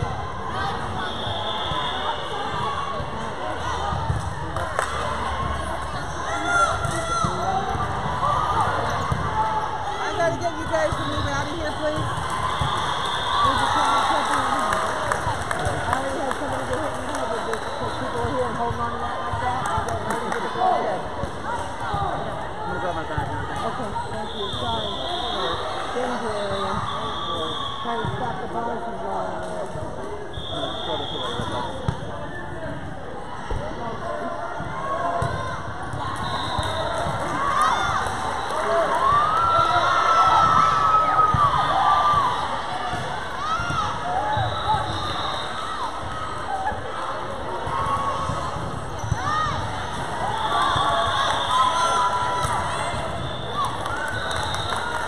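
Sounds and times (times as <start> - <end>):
voices echoing in a gym: 0.0 - 55.0.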